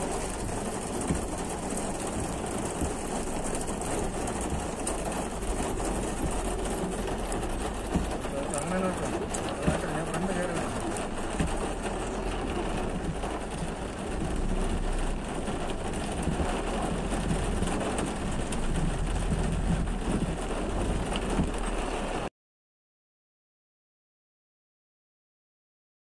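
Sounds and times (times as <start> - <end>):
car engine and road rumble: 0.0 - 22.3
rain on windscreen: 0.0 - 22.3.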